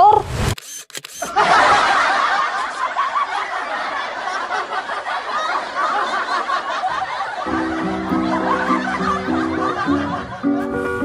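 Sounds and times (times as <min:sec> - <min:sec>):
camera shutter click: 0:00.5 - 0:01.4
canned laughter: 0:01.2 - 0:10.8
light comic music: 0:07.5 - 0:11.0.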